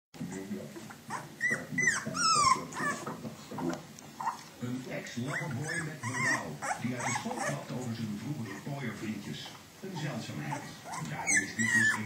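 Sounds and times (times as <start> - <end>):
puppies whining and squealing: 0.2 - 4.5, 5.2 - 8.8, 10.0 - 12.0.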